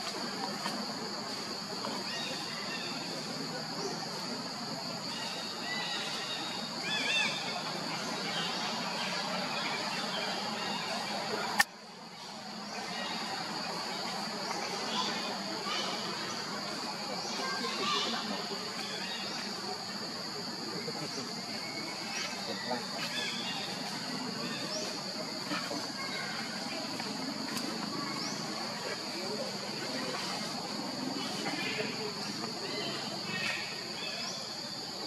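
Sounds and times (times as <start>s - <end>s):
faint indistinct voices: 0.0s - 35.0s.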